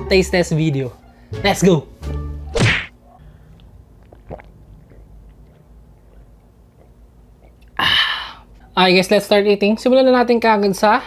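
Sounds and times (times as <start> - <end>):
whoosh and whack effect: 2.5 - 2.9.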